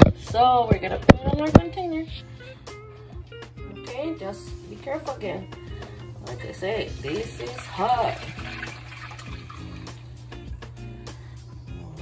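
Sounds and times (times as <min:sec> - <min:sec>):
background music: 0:00.0 - 0:12.0
liquid pouring into container: 0:06.9 - 0:10.3.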